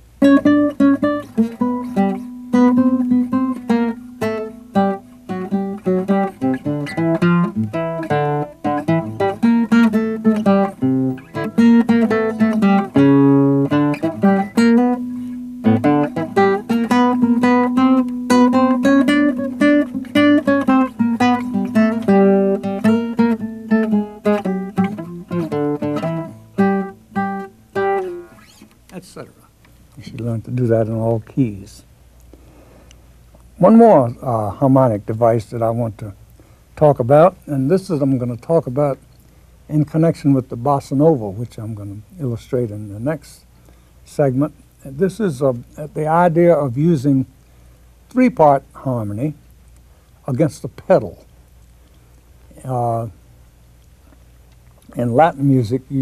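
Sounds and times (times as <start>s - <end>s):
classical guitar fingerstyle blues: 0.0s - 29.4s.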